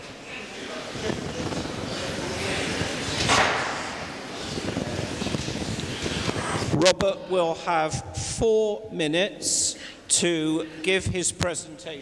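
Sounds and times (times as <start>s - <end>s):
audience murmur: 0.0s - 6.8s.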